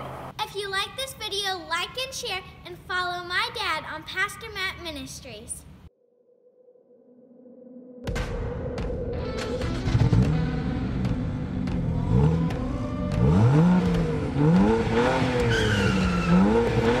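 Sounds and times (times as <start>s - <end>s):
car engine revving: 0.0s - 0.4s, 9.4s - 17.0s
tyre squeal: 15.5s - 16.7s.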